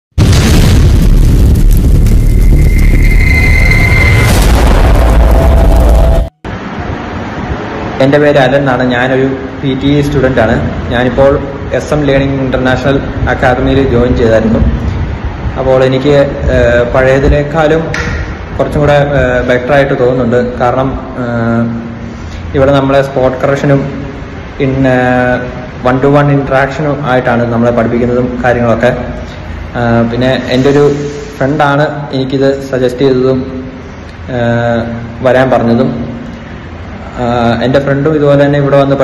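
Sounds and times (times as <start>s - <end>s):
low rumbling boom: 0.2s - 7.6s
high ringing tone: 2.0s - 6.5s.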